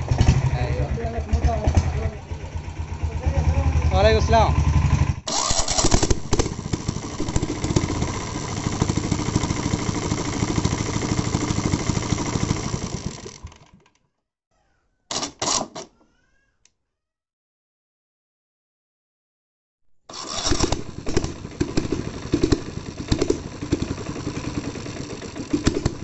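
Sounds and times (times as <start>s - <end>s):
single-cylinder diesel engine running: 0.0s - 13.8s, 20.1s - 26.0s.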